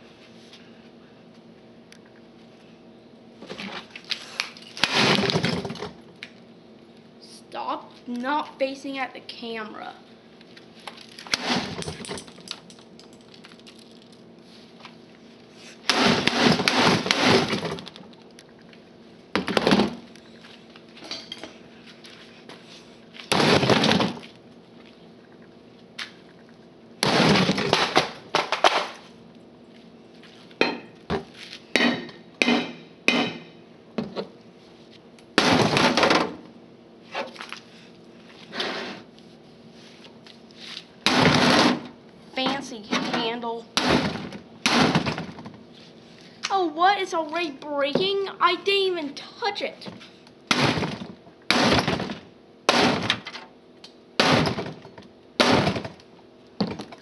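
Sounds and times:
sledgehammer striking plastic: 41.0 - 41.9, 43.8 - 45.5, 50.5 - 53.3, 54.2 - 54.8, 55.4 - 56.0.

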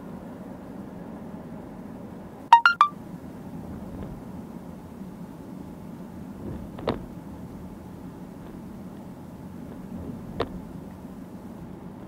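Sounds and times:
electronic beeps: 2.6 - 2.9
car road and engine hum: 3.1 - 12.0.

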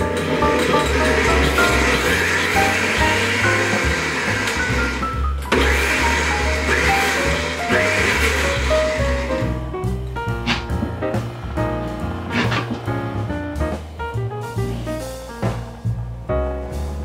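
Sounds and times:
blender running: 0.0 - 9.6
background music: 0.0 - 17.0.

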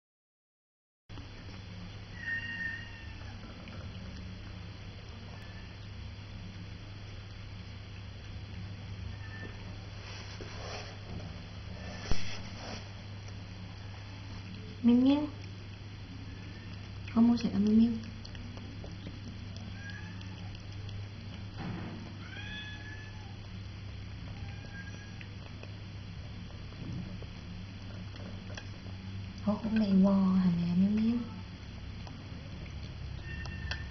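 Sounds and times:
steady low hum: 1.1 - 33.9
cat meowing: 2.1 - 3.4, 5.3 - 5.8, 9.1 - 9.8, 19.6 - 20.5, 22.2 - 23.4, 24.4 - 25.3, 33.2 - 33.9
cat squeaky call: 2.2 - 3.3, 33.2 - 33.9.

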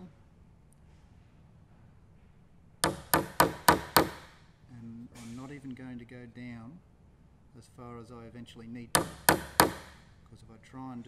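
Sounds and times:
hammer tapping wood chisel: 2.8 - 4.3, 9.0 - 10.0.

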